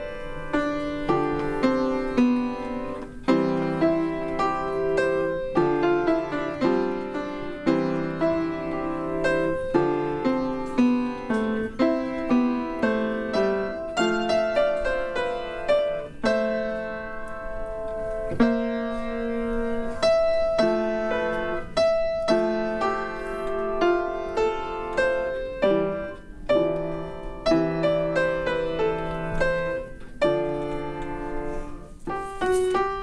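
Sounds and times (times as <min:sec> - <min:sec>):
slow solo piano melody: 0:00.0 - 0:33.0.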